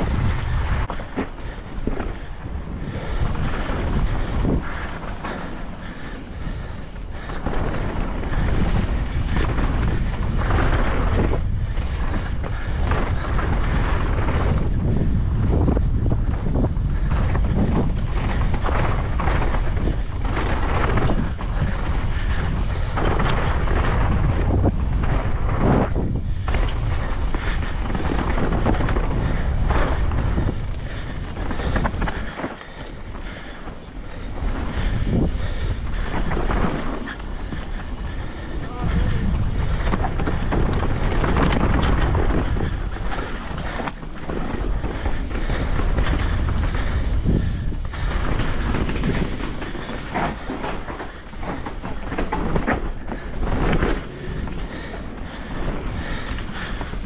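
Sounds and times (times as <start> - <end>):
bike knocks and rattles: 0.0 - 57.0
tyres rolling on dirt: 0.0 - 57.0
wind buffeting microphone: 0.0 - 57.0.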